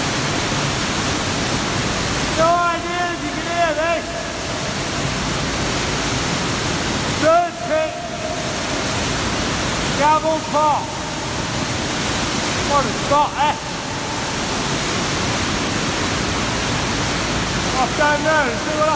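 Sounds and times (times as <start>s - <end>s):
rushing falling water: 0.0s - 18.9s.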